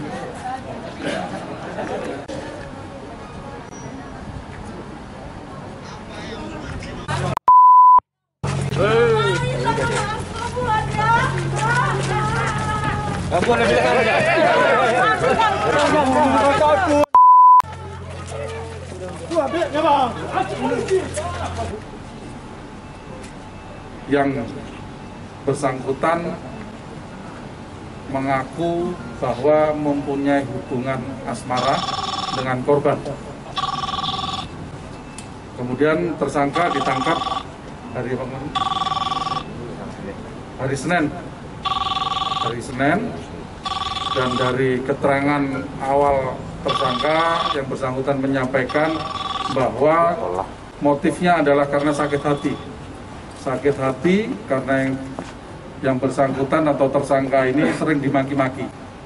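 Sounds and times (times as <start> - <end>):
high censor beep: 7.4 - 8.0, 17.1 - 17.7, 36.6 - 37.4, 46.7 - 47.6
voices: 8.5 - 34.6, 35.2 - 58.8
telephone ringing: 31.6 - 32.6, 33.5 - 34.6, 36.5 - 37.5, 38.5 - 39.6, 41.6 - 42.7, 43.6 - 44.6, 46.7 - 47.7, 48.6 - 49.8, 52.0 - 52.7.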